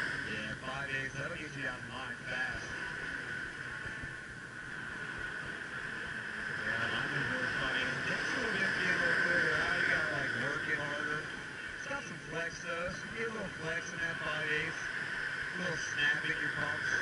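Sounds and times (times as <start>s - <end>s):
surf washing: 0.0s - 17.0s.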